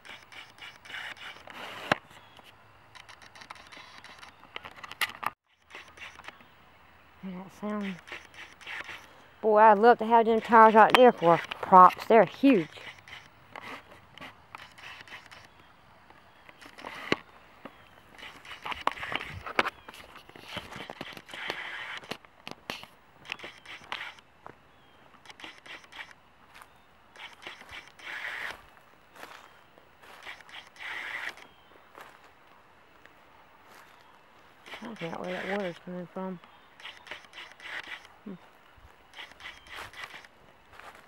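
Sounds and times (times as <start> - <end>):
footsteps through dry grass: 16.6 - 22.0, 22.7 - 35.9, 36.9 - 41.0.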